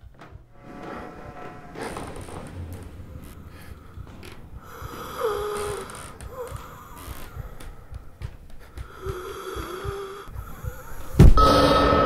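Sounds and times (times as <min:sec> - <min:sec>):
person breathing low drawn-out: 0:01.2 - 0:11.3.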